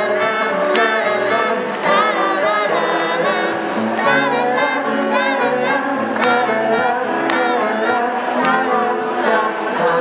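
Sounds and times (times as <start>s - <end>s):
harmonica chords: 0.0s - 9.3s
strummed acoustic guitar: 0.0s - 10.0s.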